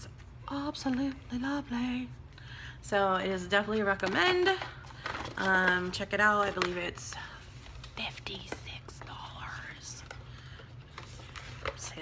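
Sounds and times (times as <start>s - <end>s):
woman whispering: 8.0s - 10.1s.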